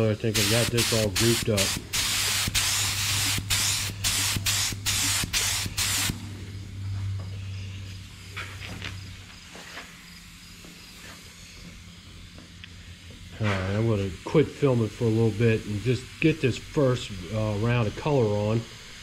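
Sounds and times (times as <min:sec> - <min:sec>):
spray gun hissing bursts: 0:00.0 - 0:06.4, 0:09.6 - 0:19.0
steady low hum: 0:00.0 - 0:19.0.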